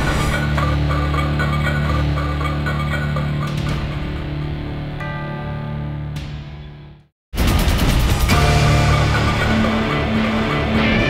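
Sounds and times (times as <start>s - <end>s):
title theme music: 0.0s - 11.0s.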